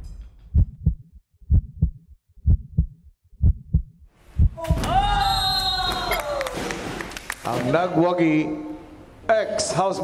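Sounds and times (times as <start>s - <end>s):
heartbeat thumps: 0.5s - 4.8s.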